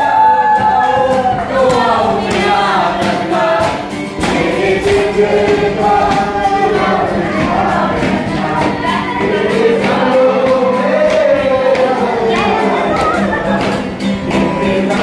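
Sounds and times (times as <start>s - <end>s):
acoustic guitar strumming: 0.0s - 15.0s
group singing in unison: 0.0s - 15.0s.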